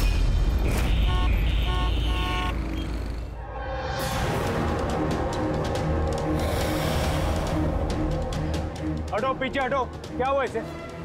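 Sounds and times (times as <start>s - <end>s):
city traffic rumble: 0.0s - 3.6s
car horn honking: 0.7s - 3.0s.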